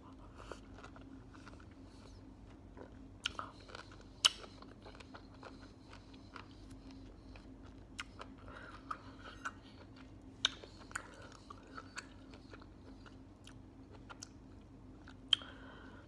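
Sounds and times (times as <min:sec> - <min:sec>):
chewing pineapple: 0:00.0 - 0:16.0.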